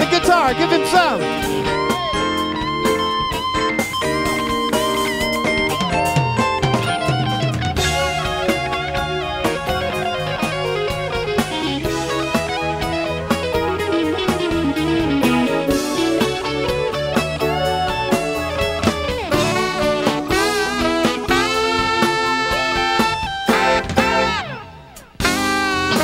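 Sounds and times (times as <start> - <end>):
drum kit: 0.0 - 26.0
electric bass: 0.0 - 26.0
electric guitar solo: 0.0 - 26.0.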